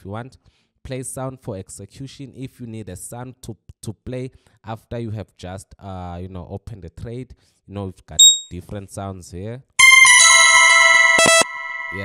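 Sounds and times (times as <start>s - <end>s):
electronic bell-like alarm ring: 8.2s - 8.5s, 9.8s - 12.0s.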